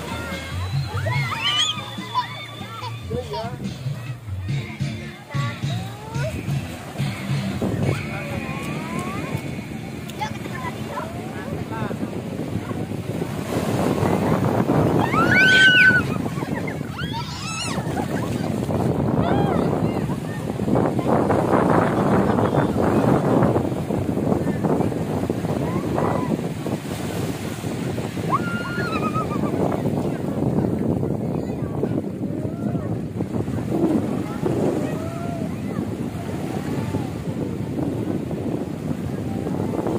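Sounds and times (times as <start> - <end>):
small waves washing on shore: 0.0 - 39.9
wind on microphone: 0.0 - 39.9.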